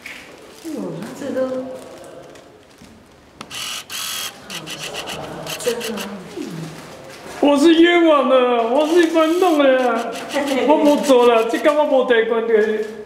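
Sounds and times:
faint voices: 4.2 - 7.2.

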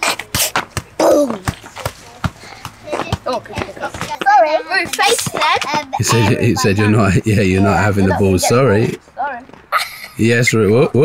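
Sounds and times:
football thudding on tarmac: 0.0 - 5.9.

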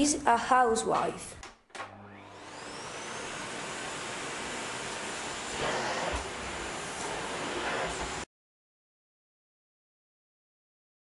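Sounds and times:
vacuum cleaner motor whine: 1.8 - 8.2.

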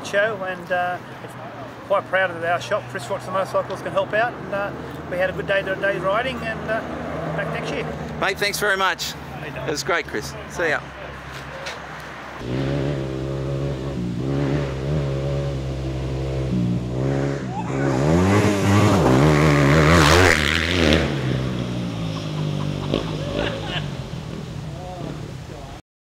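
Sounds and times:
dirt bike revving past: 12.4 - 25.2.

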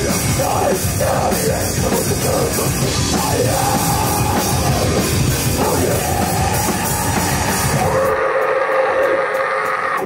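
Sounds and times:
drums and bass: 0.0 - 10.0
electric guitar feedback: 0.0 - 10.0.

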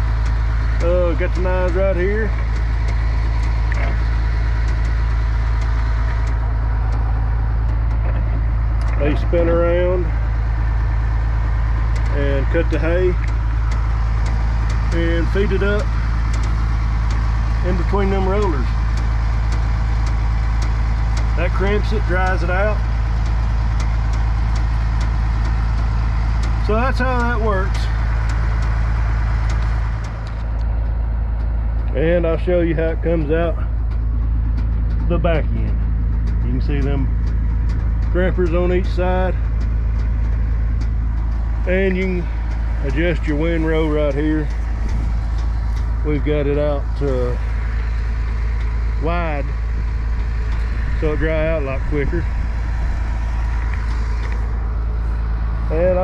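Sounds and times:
tractor engine idling: 0.0 - 56.0.

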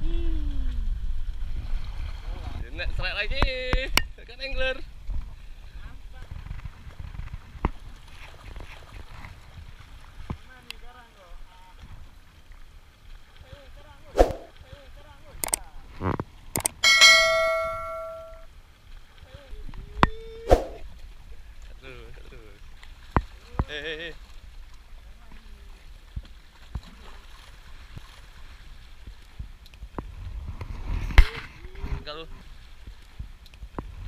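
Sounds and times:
wind on microphone: 5.0 - 10.4, 14.1 - 14.5, 19.5 - 21.0, 29.3 - 34.0
sharp clicks: 16.6 - 16.8
bell-like ding: 16.8 - 18.4.

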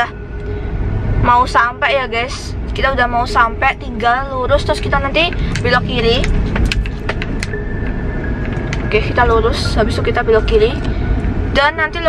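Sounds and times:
engine and tyres rumbling: 0.0 - 12.0
thin steady high tone: 0.0 - 12.0.

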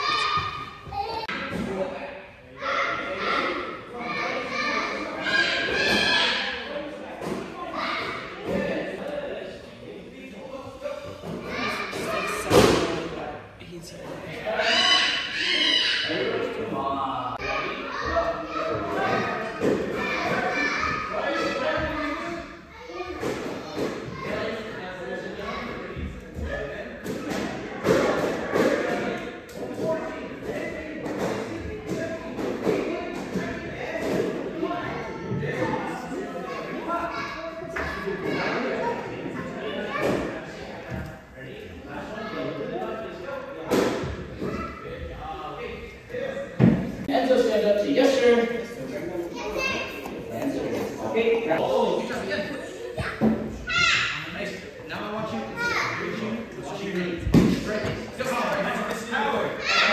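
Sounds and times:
children's voices: 0.0 - 1.6, 2.5 - 6.8, 10.8 - 13.0, 14.4 - 16.6, 17.4 - 24.6, 34.6 - 40.6, 48.9 - 54.4, 55.3 - 56.4, 59.6 - 59.9.

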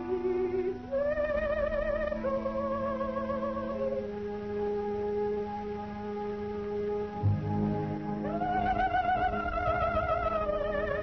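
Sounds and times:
orchestral music with high melody: 2.0 - 11.0.

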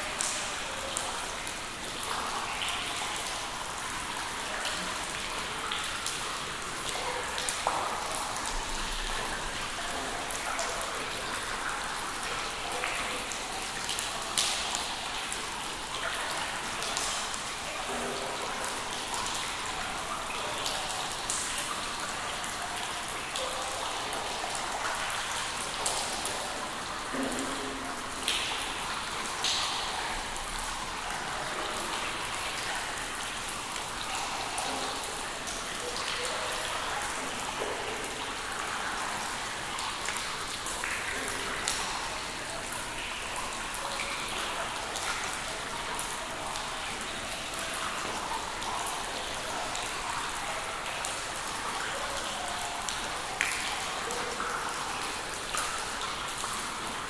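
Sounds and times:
ringing water drips: 0.0 - 57.0
water dripping into pools: 0.0 - 57.0.

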